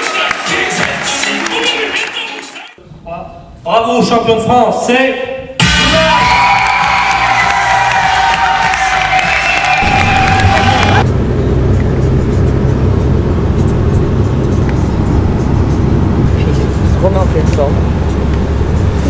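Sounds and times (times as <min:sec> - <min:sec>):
music: 0:00.0 - 0:02.8, 0:05.6 - 0:11.0
vehicle rumble from inside cabin: 0:10.4 - 0:19.0.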